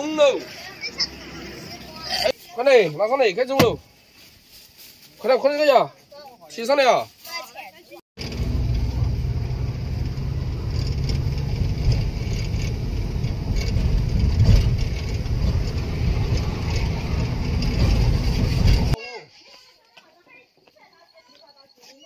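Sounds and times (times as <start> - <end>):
van engine and road rumble: 0.0 - 2.4, 8.2 - 19.0.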